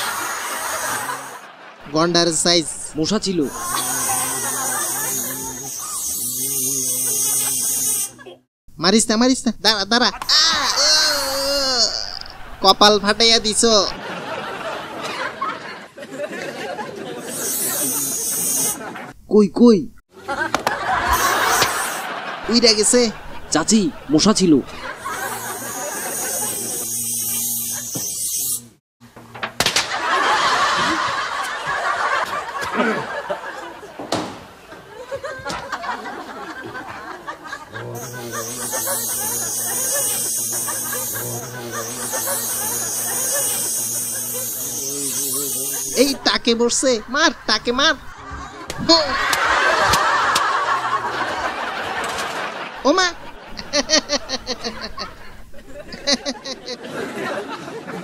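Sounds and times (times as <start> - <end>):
loud lively voices: 0.0 - 2.7, 44.9 - 58.0
steady high hiss: 0.0 - 8.2, 17.1 - 19.0, 21.0 - 28.8, 38.0 - 48.0
people talking: 0.8 - 7.5, 8.2 - 14.0, 22.4 - 24.9, 37.8 - 43.8, 44.6 - 49.4, 52.8 - 55.1
low level voice: 37.8 - 38.6, 41.1 - 42.1.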